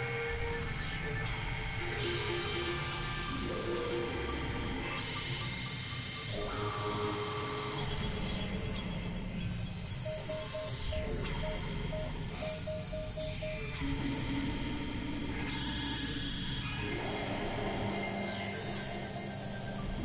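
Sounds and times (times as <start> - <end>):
high steady synth tones: 10.0 - 14.6
short electronic beeps: 10.1 - 13.8.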